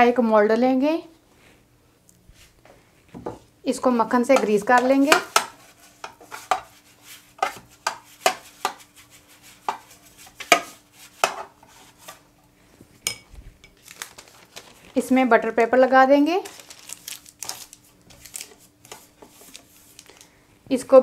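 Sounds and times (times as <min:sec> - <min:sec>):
metal pan knocking and scraping: 0:04.3 - 0:06.7, 0:07.4 - 0:08.9, 0:09.6 - 0:11.6.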